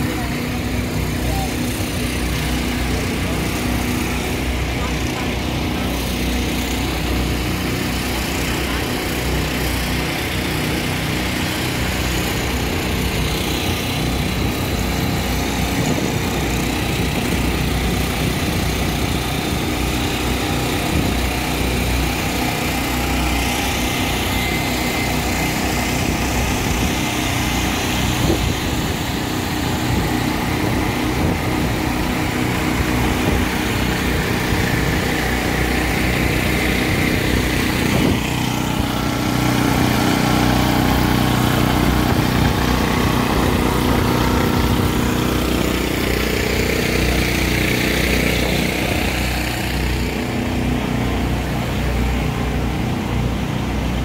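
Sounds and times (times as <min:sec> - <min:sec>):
generator engines running: 0:00.0 - 0:54.0.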